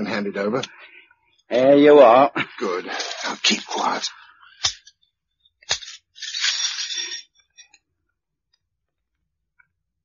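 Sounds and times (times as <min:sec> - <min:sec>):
handcuffs metallic rustling: 0:05.6 - 0:07.8.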